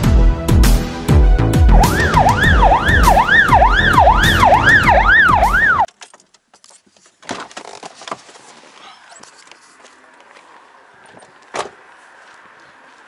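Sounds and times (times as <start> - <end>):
music with heavy bass beat: 0.0 - 5.8
police siren wail: 1.7 - 5.9.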